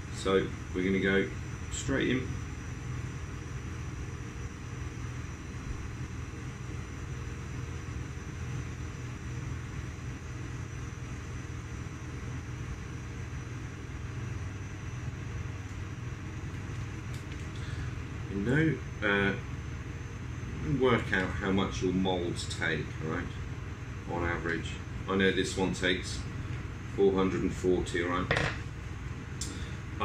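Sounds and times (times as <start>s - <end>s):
faint high whine: 0.0s - 30.0s
low mechanical hum: 0.0s - 30.0s.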